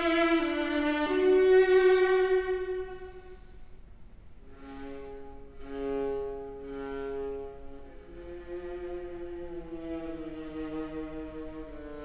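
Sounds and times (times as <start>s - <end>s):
bowed viola notes: 0.0s - 3.8s, 4.4s - 12.0s.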